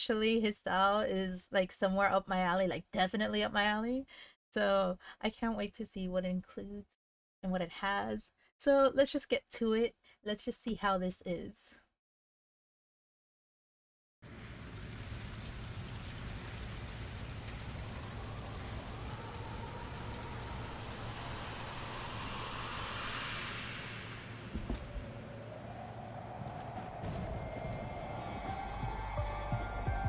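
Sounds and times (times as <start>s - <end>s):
crackling hiss: 14.2s - 28.1s
rising tone: 17.3s - 30.0s.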